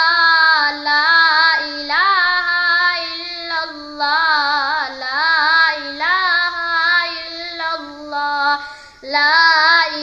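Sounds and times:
boy singing: 0:00.0 - 0:10.0.

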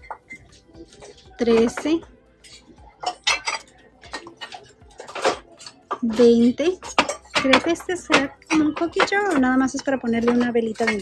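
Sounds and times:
ceramic pieces clinking: 0:02.4 - 0:11.0.

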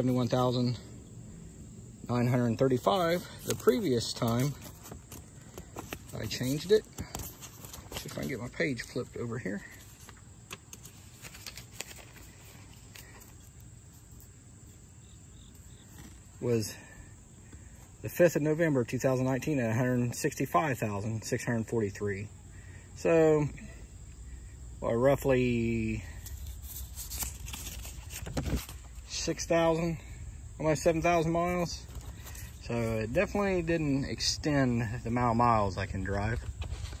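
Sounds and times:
insects chirping: 0:00.0 - 0:37.0
light handling clicks and rustles: 0:02.8 - 0:14.3
notebook pages flipping: 0:02.8 - 0:14.3, 0:26.2 - 0:29.1.

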